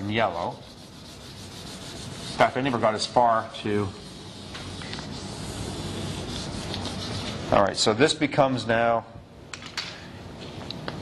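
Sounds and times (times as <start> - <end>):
chalk rubbing on chalkboard: 0.0 - 7.5.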